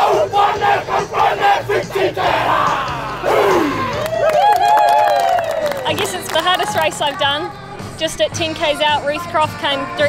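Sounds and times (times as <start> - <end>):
group chanting and shouting: 0.0 - 4.2.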